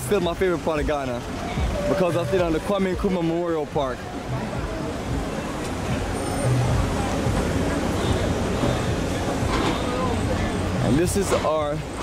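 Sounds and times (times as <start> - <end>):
street noise: 0.0 - 12.0
vehicle engine rumbling: 0.0 - 12.0.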